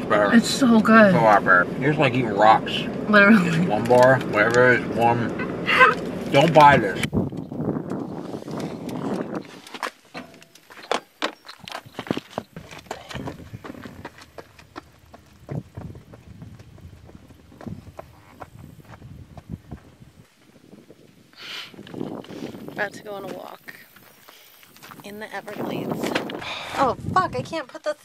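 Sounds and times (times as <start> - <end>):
footsteps crunching on gravel: 6.0 - 20.5, 21.9 - 26.4.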